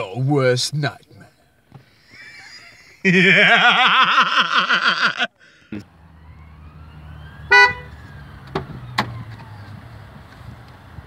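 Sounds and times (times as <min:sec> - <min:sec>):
car horn toot: 0:07.4 - 0:08.0.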